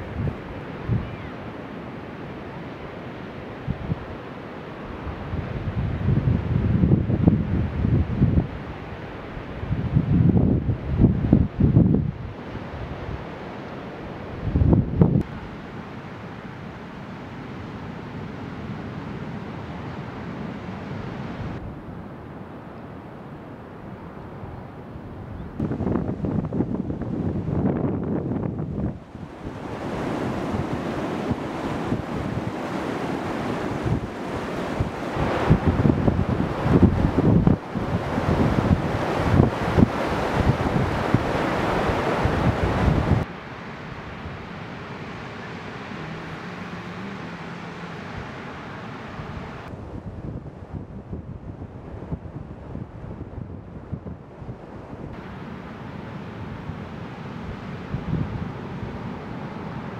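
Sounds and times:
surf washing on beach: 0.0 - 59.9
wind buffeting microphone: 5.1 - 8.7, 9.5 - 13.2, 14.3 - 15.3, 25.1 - 43.3, 49.1 - 55.3.

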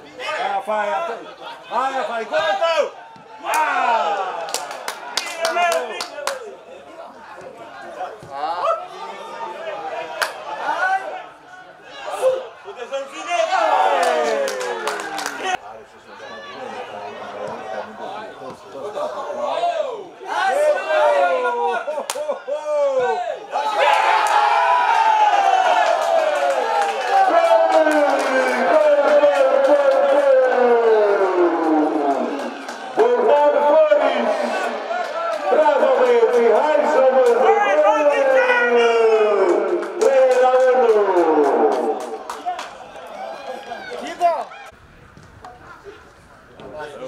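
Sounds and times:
man shouting excitedly: 35.5 - 39.4.

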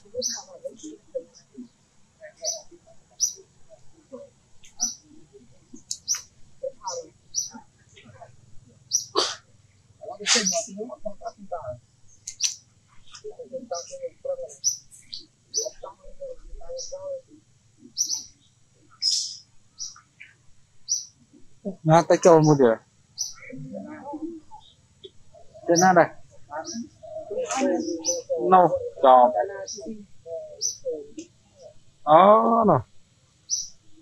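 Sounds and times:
birds chirping: 0.0 - 34.0
sharp bird calls: 0.0 - 34.0.

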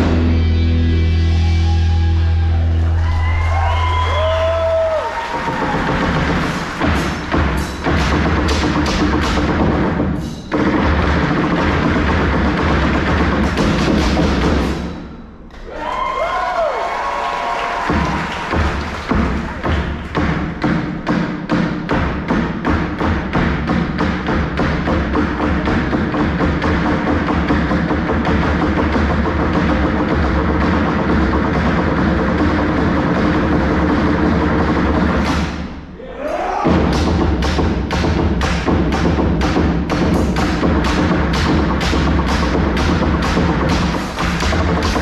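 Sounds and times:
amplified backing track with bass: 0.0 - 5.0, 36.7 - 45.0
drums and percussion rhythm: 3.0 - 15.9, 17.6 - 45.0.

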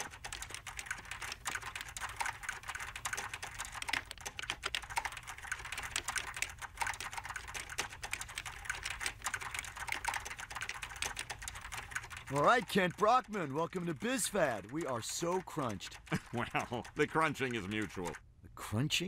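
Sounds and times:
laptop keyboards clattering: 0.0 - 18.2.

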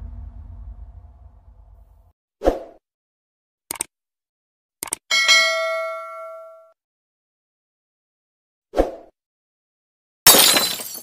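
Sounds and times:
short burst effect: 0.0 - 2.1
quick double clicks: 3.7 - 3.9
bell ding: 5.1 - 6.7.

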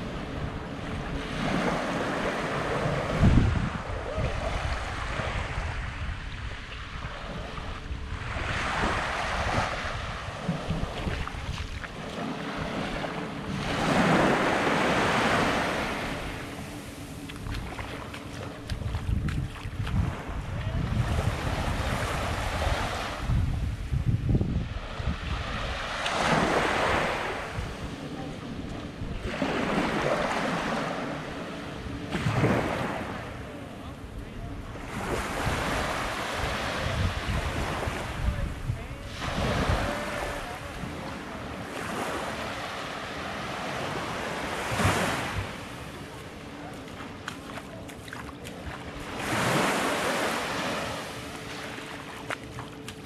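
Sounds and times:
wind rumbling on microphone: 0.0 - 42.4
small waves washing on shore: 0.0 - 53.0.

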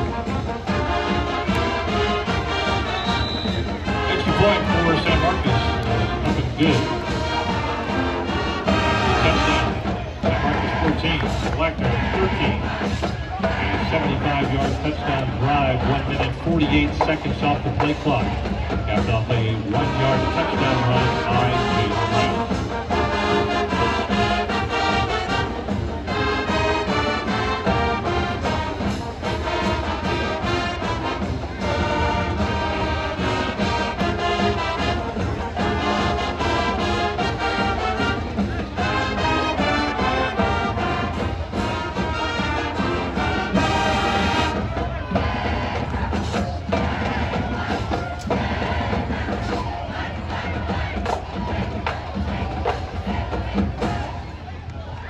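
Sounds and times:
crowd noise: 0.0 - 55.0
marching band playing: 0.0 - 55.0
drum hits: 43.4 - 54.2.

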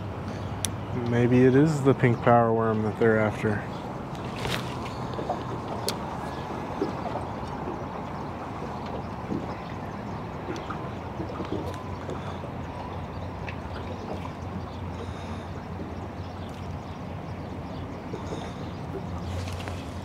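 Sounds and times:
light breeze: 0.0 - 20.0
water lapping: 0.0 - 20.0.

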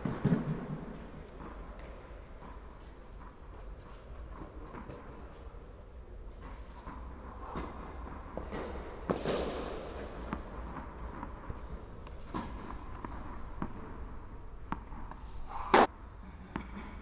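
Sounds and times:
low hall hum: 0.0 - 17.0
tennis balls bouncing and struck: 6.5 - 17.0.

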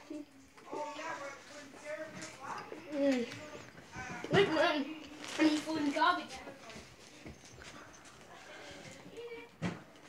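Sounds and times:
faint footsteps on a floor: 0.6 - 10.0.

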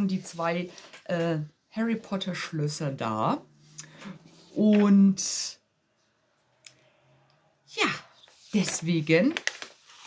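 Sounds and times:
woman speaking: 0.0 - 3.7, 4.5 - 5.7, 7.6 - 9.5.

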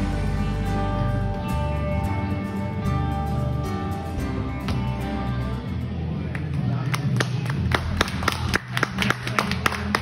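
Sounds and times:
music with steady bass line: 0.0 - 10.0
sharp claps: 6.3 - 10.0.

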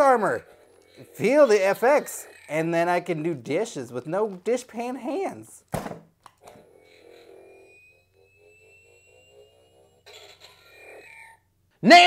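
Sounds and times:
toy electronic rising whine: 0.0 - 2.8, 6.4 - 11.5.

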